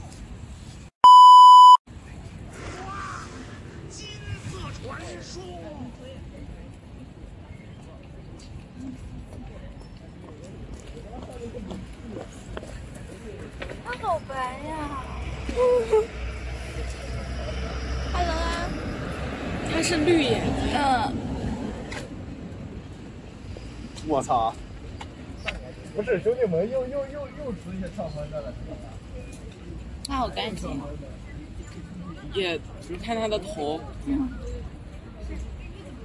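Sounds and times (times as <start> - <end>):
censor bleep: 1.0 - 1.8
distant road traffic rumble: 10.3 - 30.0.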